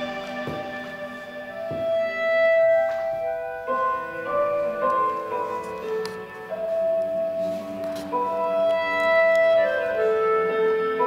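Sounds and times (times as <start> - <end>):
instrumental music chords: 0.0 - 11.0.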